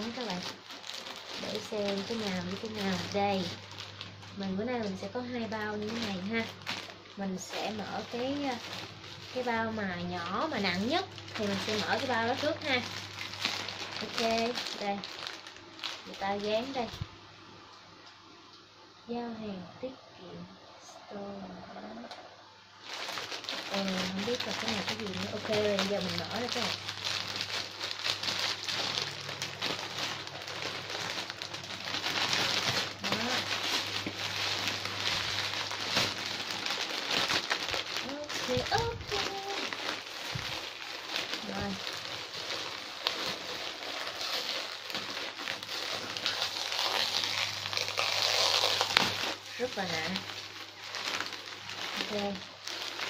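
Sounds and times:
plastic packaging crinkling: 0:00.0 - 0:17.1, 0:22.8 - 0:53.0.

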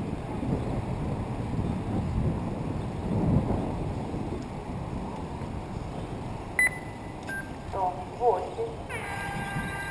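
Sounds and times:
outdoor background noise: 0:00.0 - 0:09.9
short electronic beeps: 0:06.6 - 0:07.6.

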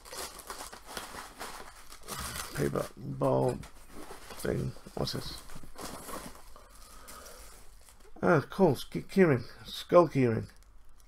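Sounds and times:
paper wrapping crinkling and tearing: 0:00.0 - 0:08.1.

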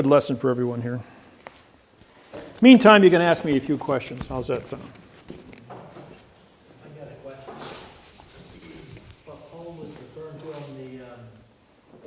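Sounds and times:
rustling scrape: 0:07.4 - 0:11.0.

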